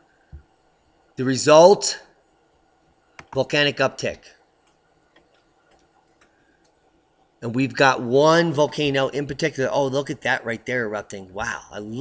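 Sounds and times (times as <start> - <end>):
man speaking: 1.2 - 2.1, 3.3 - 4.4, 7.4 - 12.0
light clicks at computer desk: 3.2 - 3.4, 4.6 - 6.8.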